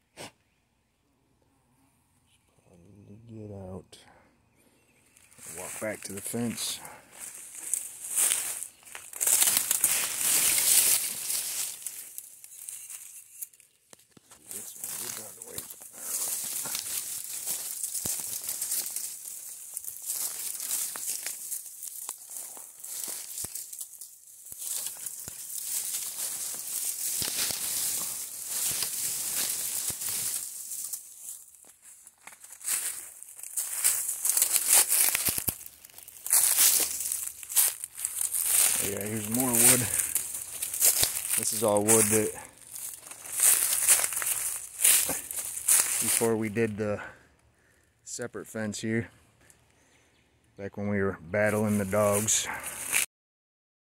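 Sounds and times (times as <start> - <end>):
brush rustling: 5.1 - 47.0, 51.6 - 53.1
footsteps crunching dry leaves: 5.1 - 47.2, 51.5 - 53.1.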